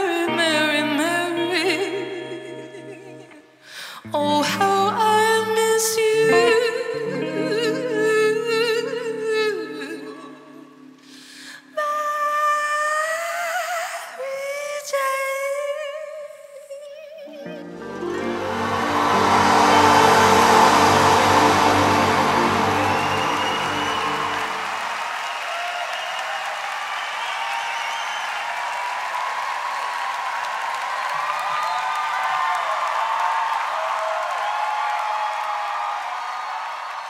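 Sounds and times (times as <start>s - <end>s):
orchestra sustained chord: 17.6s - 24.8s
audience applauding and cheering: 17.6s - 37.0s.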